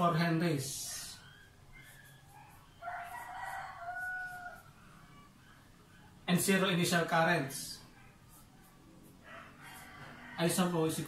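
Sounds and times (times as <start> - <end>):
faint rooster crowing: 1.2 - 6.2, 8.0 - 11.0.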